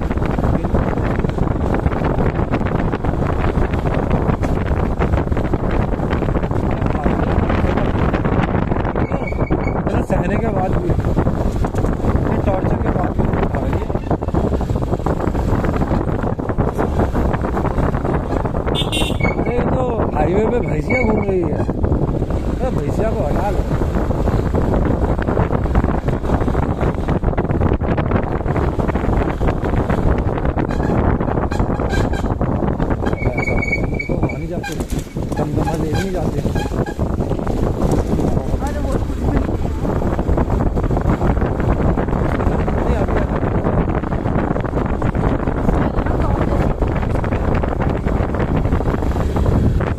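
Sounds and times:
motorcycle rumble on rough road: 0.0s - 49.9s
wind buffeting microphone: 0.0s - 49.9s
knocks and rattles: 30.7s - 39.6s.

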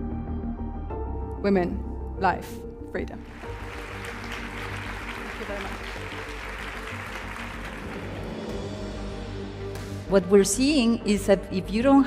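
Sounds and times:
background music: 0.0s - 12.0s
audience applauding: 3.3s - 9.1s.

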